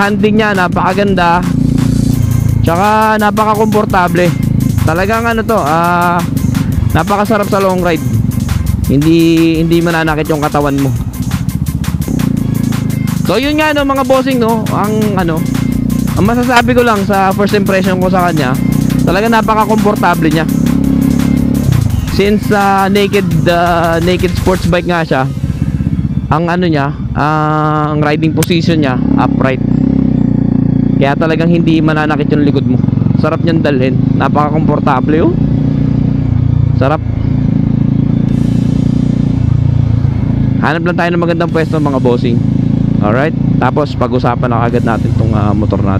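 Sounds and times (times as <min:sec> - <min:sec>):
motorcycle engine running: 0:00.0 - 0:45.9.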